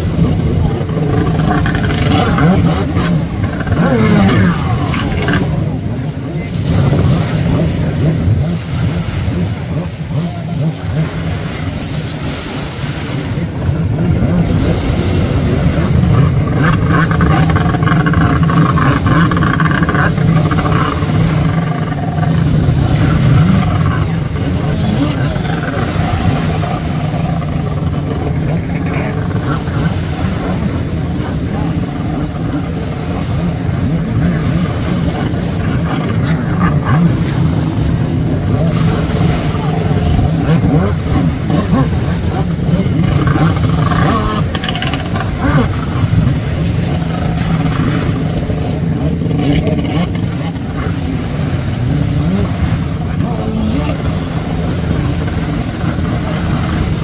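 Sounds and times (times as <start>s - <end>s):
jet ski engine revving: 0.0s - 57.0s.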